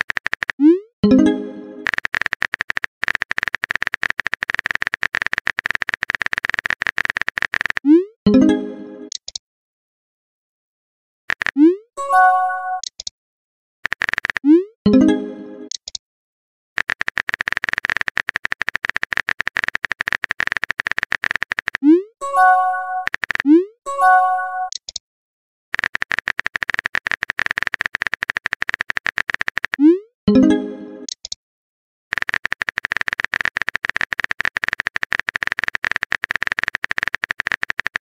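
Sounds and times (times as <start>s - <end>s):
phone keyboard typing clicks: 0.0s - 0.6s, 1.8s - 7.9s, 9.1s - 9.4s, 11.3s - 11.8s, 12.8s - 13.1s, 13.8s - 14.6s, 15.7s - 16.0s, 16.8s - 23.6s, 24.6s - 25.0s, 25.8s - 29.9s, 31.0s - 31.4s, 32.1s - 38.0s.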